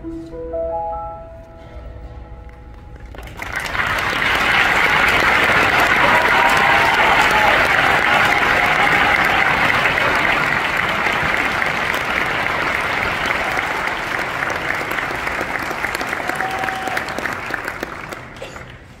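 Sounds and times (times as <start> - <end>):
audience applauding: 2.7 - 19.0.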